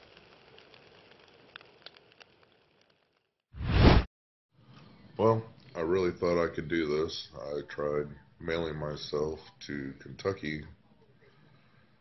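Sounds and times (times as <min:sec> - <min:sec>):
soft crackles: 0:00.0 - 0:04.0.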